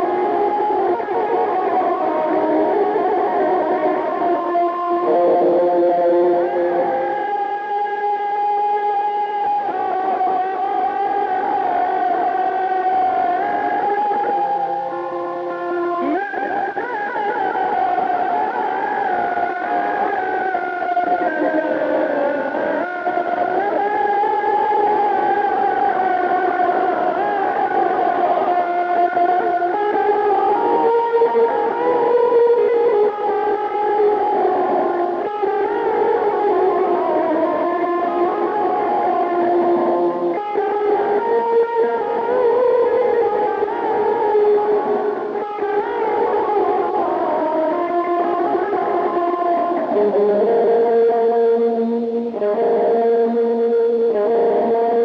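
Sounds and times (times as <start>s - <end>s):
electric guitar lead melody: 0.0s - 55.0s.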